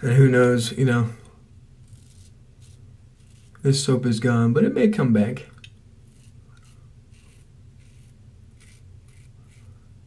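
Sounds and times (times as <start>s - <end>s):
razor scraping stubble: 1.8s - 3.6s, 6.1s - 9.8s.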